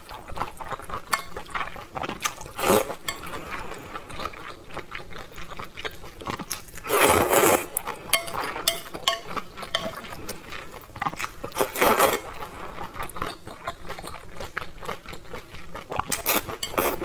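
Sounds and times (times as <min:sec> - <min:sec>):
noodle slurp: 0:00.0 - 0:17.0
wet chewing: 0:00.0 - 0:17.0.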